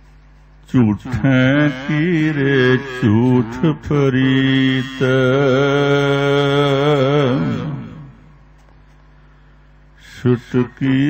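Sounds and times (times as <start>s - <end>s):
man singing chanted melody: 0.7s - 8.4s, 10.0s - 11.0s.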